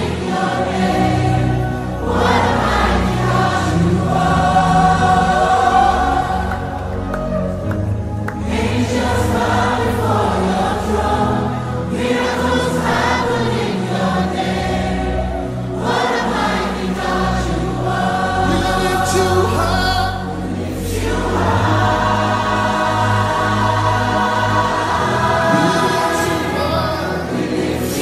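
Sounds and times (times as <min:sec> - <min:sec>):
choir singing gospel: 0:00.0 - 0:28.0.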